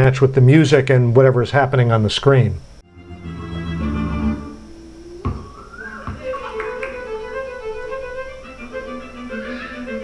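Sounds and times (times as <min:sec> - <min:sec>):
double bass notes: 0:02.8 - 0:08.4
violin with vibrato: 0:02.9 - 0:10.0.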